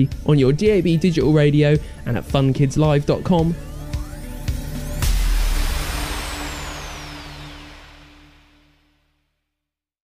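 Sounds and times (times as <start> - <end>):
electronic jingle crash: 3.6 - 8.8
falling whistle-like sweep: 3.6 - 8.9.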